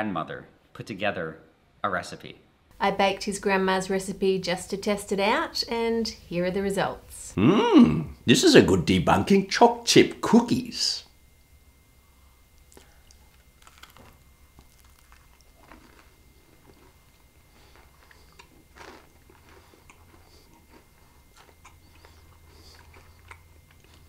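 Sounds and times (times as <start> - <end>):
chewing cookie: 12.6 - 24.0.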